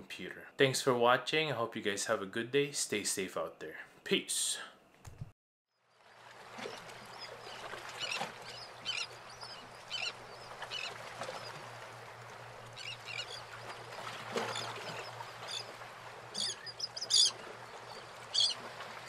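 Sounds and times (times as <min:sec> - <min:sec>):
steady background hiss: 0:00.0 - 0:05.0
birds chirping: 0:06.7 - 0:19.0.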